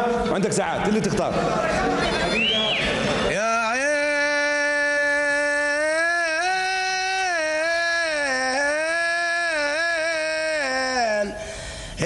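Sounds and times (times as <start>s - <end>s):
man singing unaccompanied: 3.3s - 11.5s.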